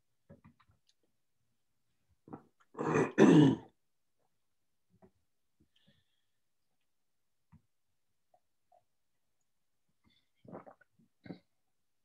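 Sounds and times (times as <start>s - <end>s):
person clearing throat: 2.7s - 3.7s.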